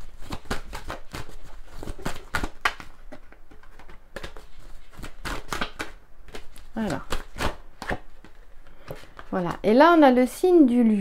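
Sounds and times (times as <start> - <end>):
cards being shuffled: 0.0 - 9.6.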